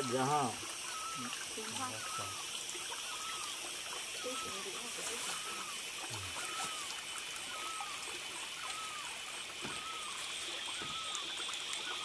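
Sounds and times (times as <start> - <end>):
insects buzzing: 0.0 - 12.0
stream trickling: 0.0 - 12.0.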